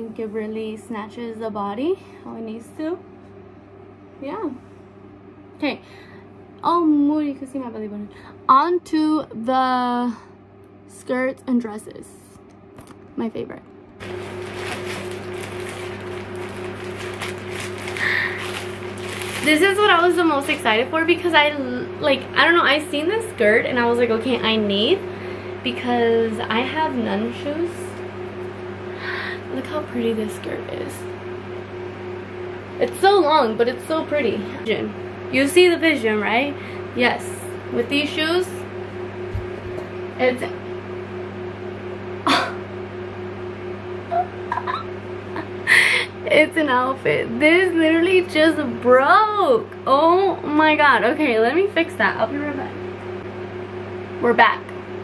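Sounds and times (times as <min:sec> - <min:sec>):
steady low hum: 0:00.0 - 0:55.0
plastic bag crinkling: 0:14.0 - 0:20.6.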